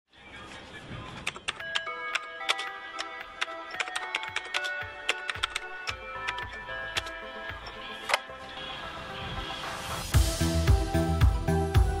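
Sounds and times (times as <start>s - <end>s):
computer keyboard keys clicking: 1.2s - 8.2s.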